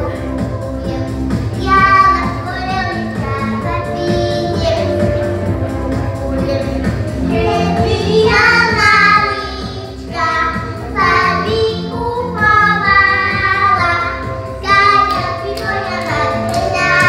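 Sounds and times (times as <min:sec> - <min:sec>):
children singing: 0:00.0 - 0:05.6, 0:06.2 - 0:17.0
music with steady beat: 0:00.0 - 0:17.0.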